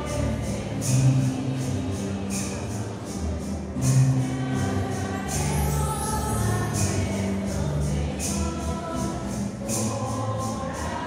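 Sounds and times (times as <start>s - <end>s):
choir singing a hymn: 0.0s - 11.0s
light percussion beat: 0.0s - 11.0s.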